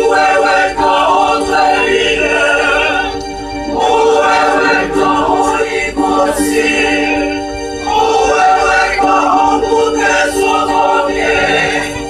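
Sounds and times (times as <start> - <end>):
mixed choir singing in harmony: 0.0 - 12.0.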